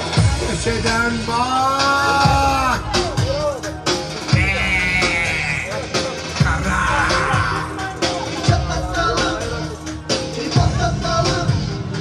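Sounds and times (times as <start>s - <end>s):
dance music with a beat: 0.0s - 12.0s.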